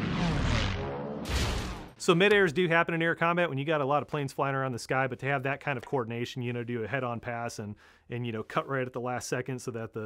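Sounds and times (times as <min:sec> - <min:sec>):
planes colliding crash: 0:00.0 - 0:02.0.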